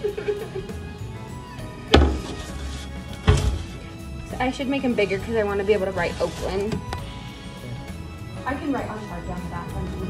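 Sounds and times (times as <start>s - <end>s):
background music: 0.0s - 10.0s
baking sheet knocking on countertop: 1.9s - 2.5s.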